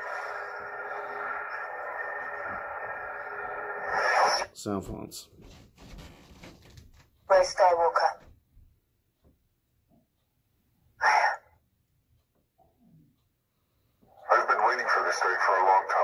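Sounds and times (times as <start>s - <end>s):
voice clips from small speaker: 3.9s - 5.2s, 7.3s - 8.3s, 11.0s - 11.4s, 14.2s - 16.0s.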